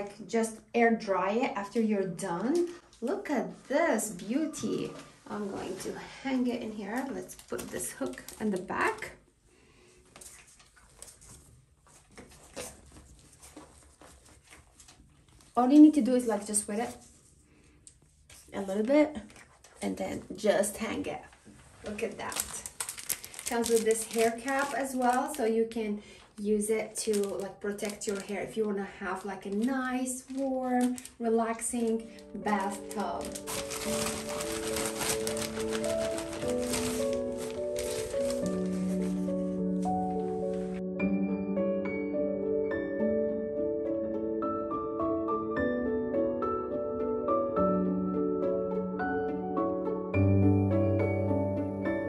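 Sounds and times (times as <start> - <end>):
plastic shower cap crinkling: 6.7 - 9.2, 10.2 - 15.9, 21.8 - 25.5, 26.4 - 40.8
faint rustling: 9.9 - 20.2, 26.1 - 40.8
background music of held notes: 31.9 - 52.0.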